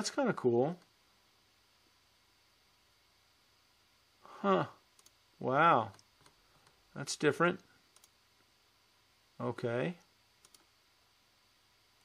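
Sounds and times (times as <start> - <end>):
computer mouse clicks: 5.0 - 5.2, 7.9 - 8.2, 10.4 - 10.7.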